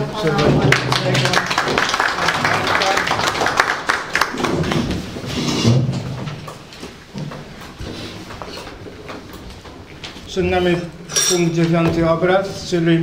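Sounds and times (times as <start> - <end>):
crowd applauding: 0.6 - 5.1.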